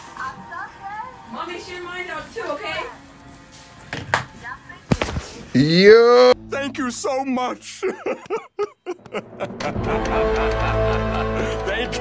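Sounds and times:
faint music from phone speaker: 0.0 - 5.5.

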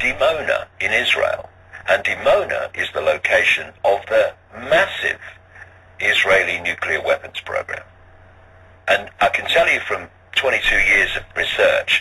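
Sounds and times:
man talking: 0.0 - 5.4, 6.0 - 7.9, 8.9 - 12.0
steady low hum: 0.0 - 12.0.

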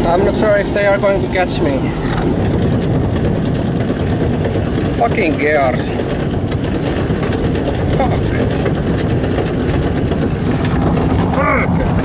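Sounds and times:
velomobile road and drivetrain noise: 0.0 - 12.0.

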